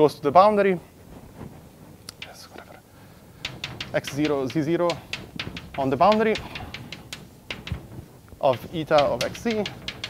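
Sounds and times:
chalk scratching on blackboard: 2.2 - 2.8.

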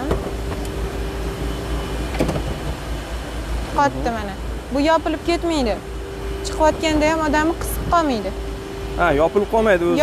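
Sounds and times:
steady hum: 0.0 - 10.0
door clunk at open stop: 2.1 - 2.8.

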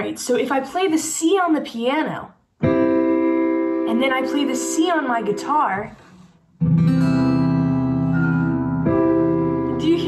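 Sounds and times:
acoustic guitar ringing: 6.6 - 9.7.

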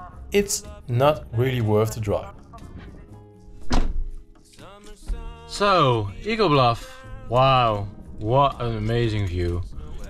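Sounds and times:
background music: 0.0 - 10.0
dull thunk: 3.6 - 4.2.

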